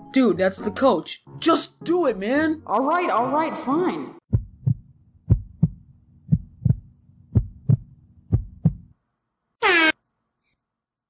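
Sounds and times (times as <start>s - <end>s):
heartbeat double thumps: 4.3s - 8.9s.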